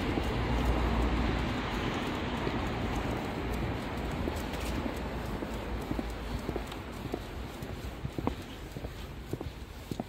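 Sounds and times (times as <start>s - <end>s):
footsteps on wet pavement: 0.0s - 10.0s.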